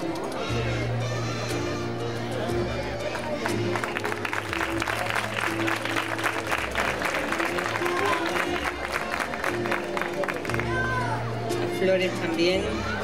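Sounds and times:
music over sound system: 0.0 - 12.8
audience applauding: 3.1 - 10.6.

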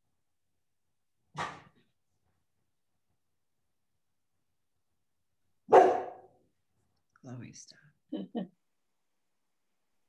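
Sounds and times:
dog barking: 5.7 - 6.4.

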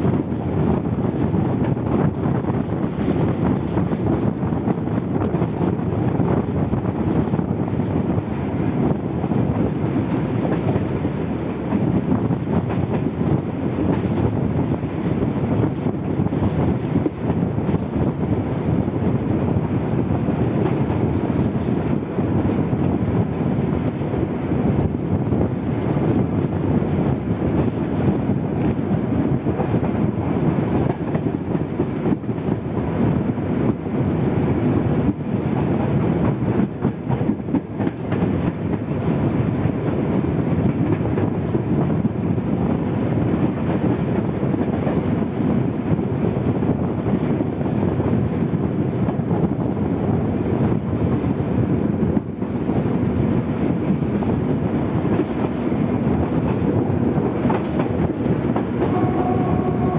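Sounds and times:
train wheels on rail: 0.0 - 59.9.

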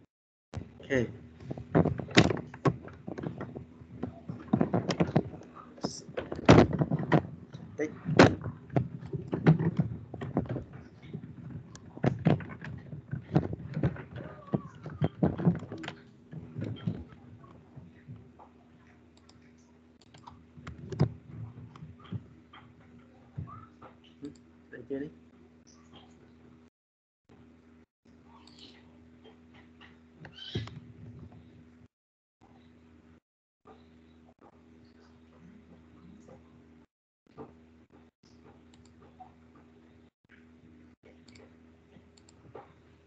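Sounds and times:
low electrical hum: 0.6 - 26.7.

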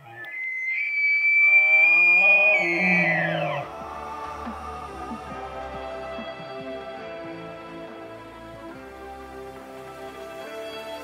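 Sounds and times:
elk bugling: 0.0 - 6.6.

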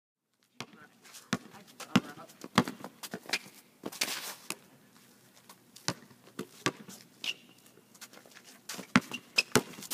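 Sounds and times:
basketball bouncing on pavement: 0.6 - 4.6, 5.8 - 7.5, 8.7 - 9.9.

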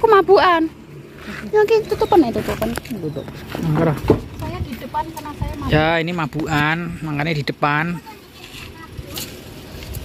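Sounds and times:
people talking: 0.0 - 0.7, 1.3 - 9.4.

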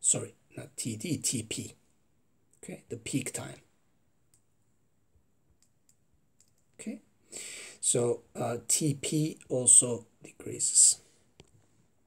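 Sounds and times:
stylus clicking on tablet screen: 5.5 - 6.7.

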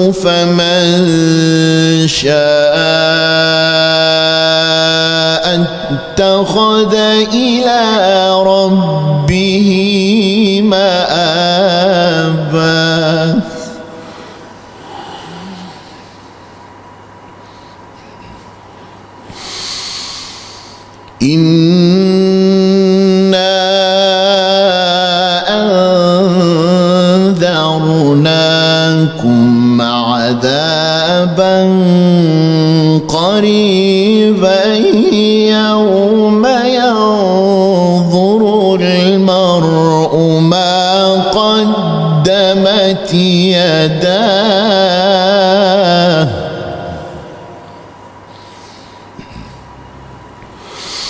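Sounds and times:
man chanting: 0.0 - 16.3, 21.2 - 47.9
deep breath close to microphone: 14.0 - 16.5, 19.2 - 20.9, 48.3 - 49.8, 50.5 - 51.0.

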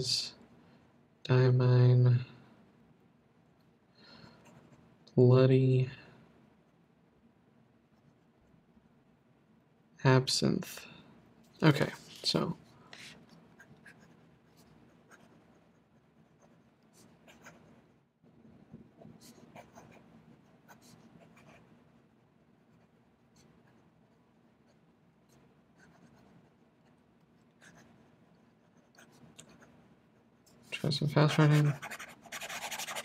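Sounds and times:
fountain pen scratching on paper: 13.0 - 17.8, 19.0 - 21.6, 25.8 - 26.4, 27.6 - 29.7, 31.2 - 33.0.

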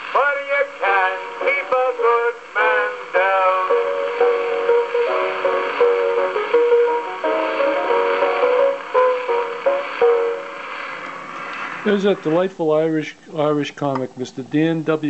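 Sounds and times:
piano accompaniment on gramophone: 0.0 - 15.0
record surface hiss: 0.0 - 15.0.

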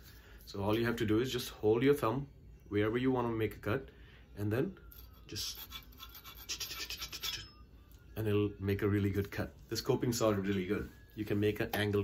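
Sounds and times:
saw rasping through twig: 5.0 - 7.5.

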